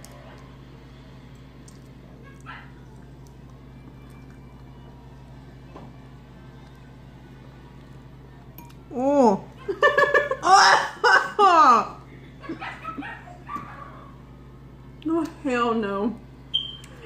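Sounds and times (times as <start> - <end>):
low electrical hum: 0.0 - 17.0.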